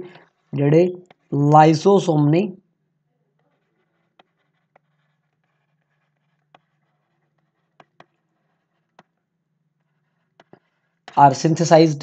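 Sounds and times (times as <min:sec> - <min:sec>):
stylus scratching on tablet: 0:00.0 - 0:02.0, 0:02.7 - 0:11.9.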